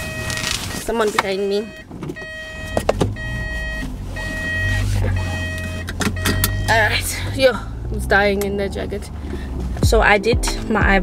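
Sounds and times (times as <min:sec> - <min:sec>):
car warning chime: 0:00.0 - 0:07.4
car engine rumble: 0:00.0 - 0:11.0.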